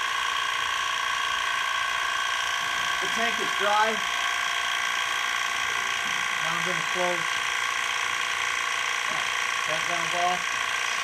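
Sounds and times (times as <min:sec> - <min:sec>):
pump whine and hum: 0:00.0 - 0:11.0.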